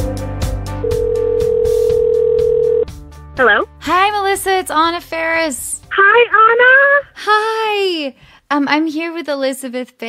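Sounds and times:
background music with a beat: 0:00.0 - 0:04.1
telephone ringing tone: 0:00.8 - 0:02.9
person answering phone: 0:00.9 - 0:02.8.

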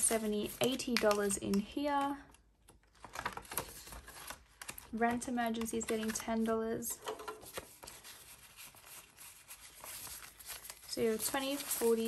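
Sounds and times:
plastic and banknotes crinkling: 0:00.0 - 0:06.5, 0:07.4 - 0:12.0.

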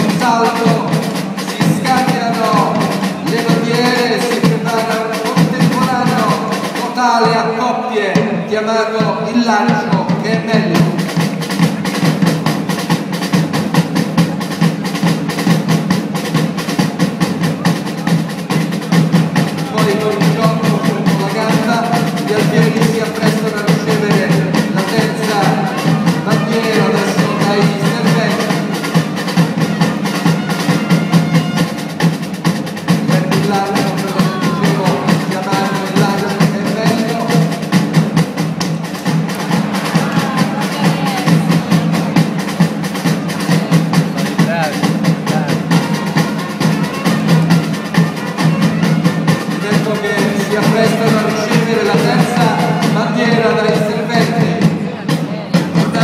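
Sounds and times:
drums playing fast beat: 0:00.0 - 0:56.0.

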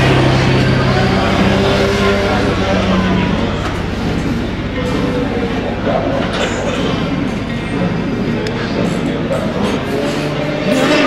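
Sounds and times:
racing motorcycle engines: 0:00.0 - 0:11.0.

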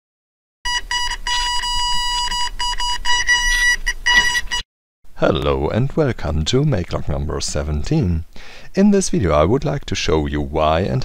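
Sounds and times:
electronic beeping: 0:00.7 - 0:04.6.

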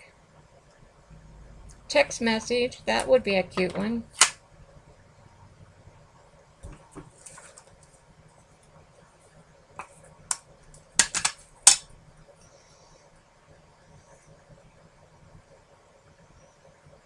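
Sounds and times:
plastic clicks and taps: 0:11.0 - 0:11.8.

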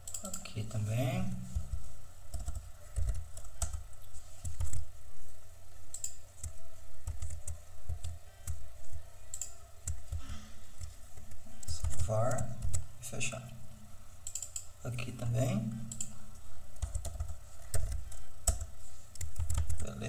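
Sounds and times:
typing on computer keyboard: 0:00.0 - 0:00.6, 0:01.6 - 0:04.8, 0:05.9 - 0:08.6, 0:09.3 - 0:10.2, 0:14.2 - 0:14.7, 0:15.8 - 0:20.0.

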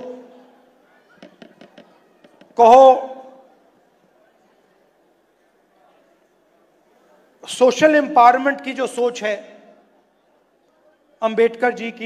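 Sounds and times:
man's voice in reverberant hall: 0:00.0 - 0:01.2, 0:02.5 - 0:04.3, 0:07.2 - 0:09.9, 0:10.7 - 0:12.0.

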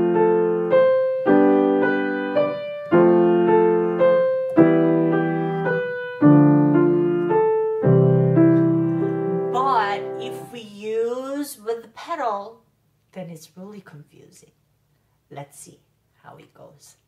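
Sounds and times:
piano playing: 0:00.0 - 0:11.1.

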